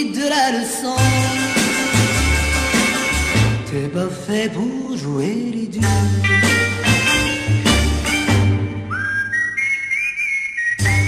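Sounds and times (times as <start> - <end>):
band playing: 1.0 - 3.9, 5.8 - 9.0
whistled melody: 6.4 - 11.0.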